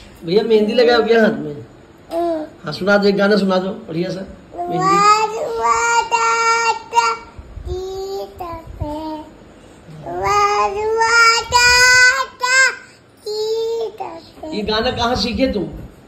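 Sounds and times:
toddler boy singing: 0:04.6 - 0:09.4, 0:10.0 - 0:14.6.

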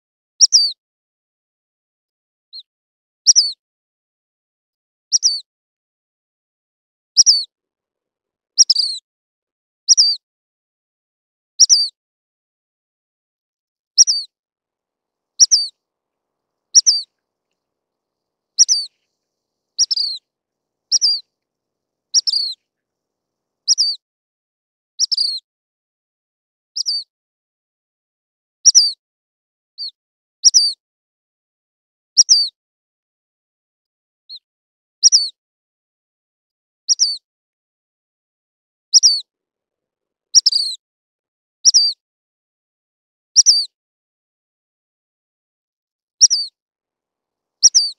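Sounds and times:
flycatcher calling: 0:15.4 - 0:15.8, 0:16.7 - 0:17.2, 0:18.6 - 0:19.1, 0:19.8 - 0:20.2, 0:20.9 - 0:21.3, 0:22.1 - 0:22.6.

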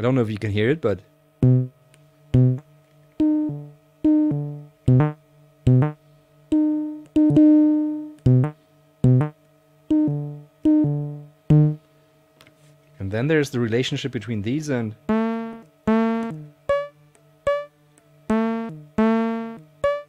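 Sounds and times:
faint steady hum: 0:00.0 - 0:20.0
low synthesizer notes: 0:01.4 - 0:01.8, 0:02.4 - 0:11.8, 0:15.0 - 0:16.9, 0:18.3 - 0:20.0.

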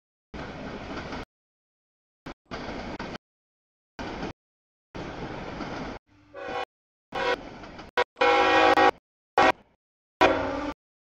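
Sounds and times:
locomotive air horn blasts: 0:06.3 - 0:07.4, 0:08.0 - 0:10.8.

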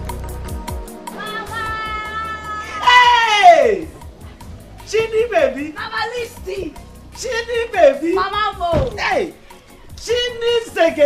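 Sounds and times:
woman exclaiming: 0:01.1 - 0:03.6.

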